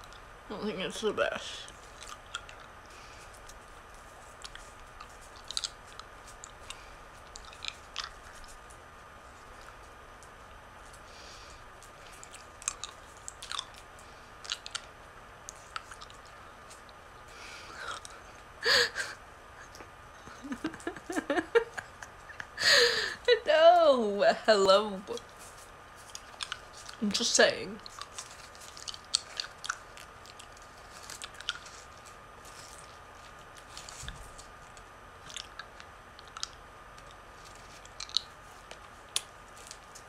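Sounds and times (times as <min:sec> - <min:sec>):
faint room hiss: 0:00.0 - 0:40.0
chewing hard candy crunches: 0:01.7 - 0:08.7, 0:09.4 - 0:17.0, 0:25.1 - 0:27.0, 0:27.8 - 0:40.0
person laughing: 0:18.6 - 0:23.5.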